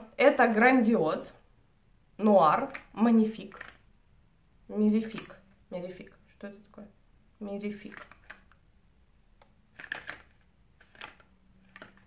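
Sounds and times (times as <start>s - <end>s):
clicks and rustles of small box handled: 2.6s - 3.9s, 7.8s - 8.7s, 9.3s - 12.0s.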